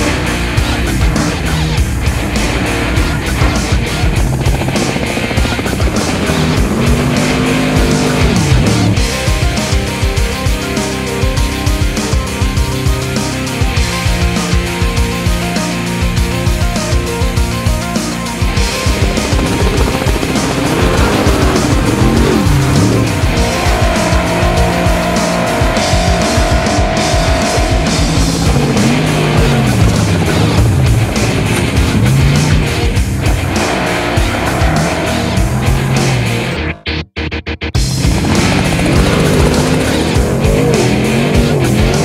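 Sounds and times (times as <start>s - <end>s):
truck engine revving: 0.0s - 37.0s, 37.8s - 42.0s
rock music: 0.0s - 42.0s.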